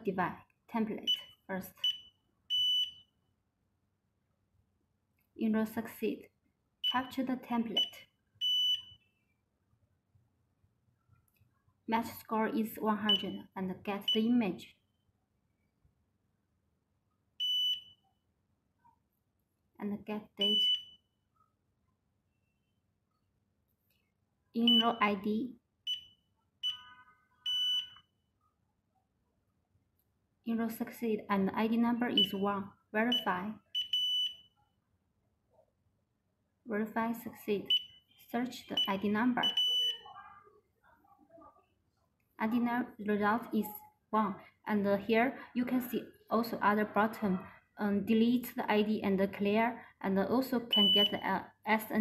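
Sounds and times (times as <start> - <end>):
fingerprint scanner beep: 1.1 - 3.1, 7.8 - 9.0, 13.1 - 13.4, 20.4 - 21.0, 24.6 - 25.0, 25.9 - 28.0, 33.1 - 34.5, 38.7 - 40.0, 50.7 - 51.2
high-pitched scanner beep: 13.1 - 14.3, 20.4 - 21.0, 24.6 - 25.1, 25.9 - 28.0, 32.2 - 32.4, 38.6 - 40.1, 50.8 - 51.2.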